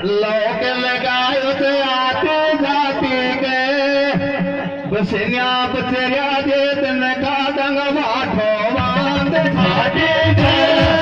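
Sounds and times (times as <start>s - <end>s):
man singing folk song: 4.9s - 11.0s.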